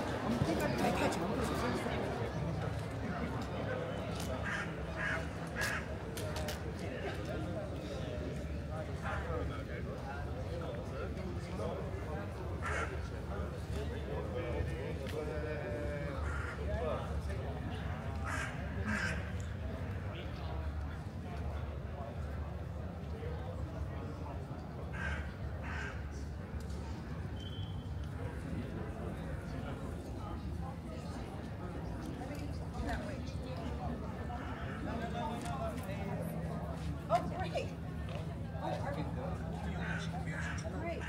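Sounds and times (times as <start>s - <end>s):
murmur of crowd: 0.0s - 41.0s
outdoor background noise: 0.0s - 41.0s
crow cawing: 4.4s - 5.9s, 12.6s - 12.9s, 16.2s - 16.6s, 18.2s - 19.3s, 24.9s - 26.1s, 39.8s - 41.0s.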